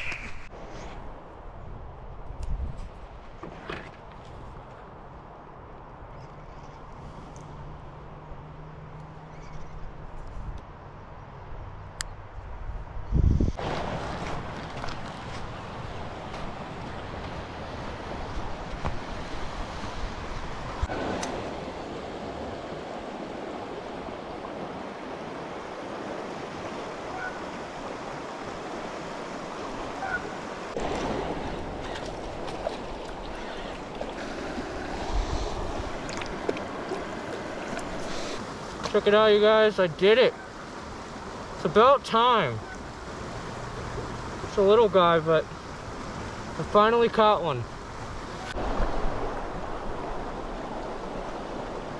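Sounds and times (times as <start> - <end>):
water rushing over rocks: 13.6 - 51.9.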